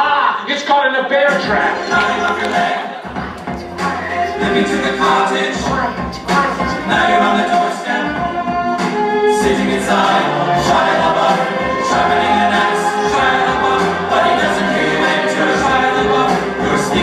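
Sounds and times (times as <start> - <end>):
song with singing and bass: 1.1 - 17.0.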